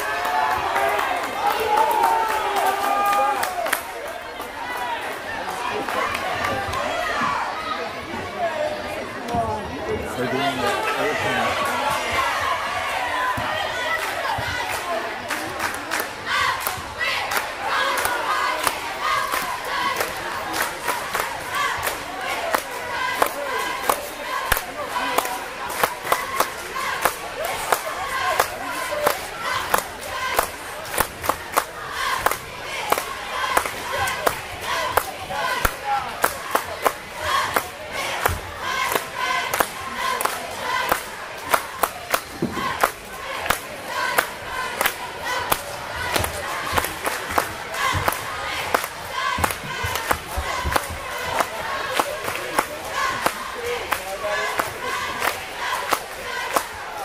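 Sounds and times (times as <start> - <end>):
cheerleaders chanting: 0.0 - 57.0
crowd chatter: 0.0 - 57.0
sharp claps: 14.0 - 56.8.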